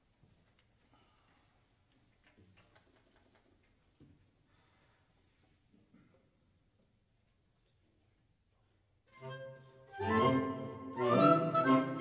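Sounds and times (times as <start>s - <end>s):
chamber wind ensemble playing: 9.1s - 12.0s.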